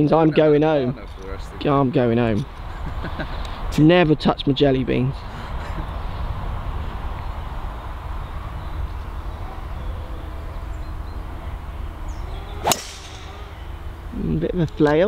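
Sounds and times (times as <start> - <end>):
golf club striking ball: 12.4 - 14.1.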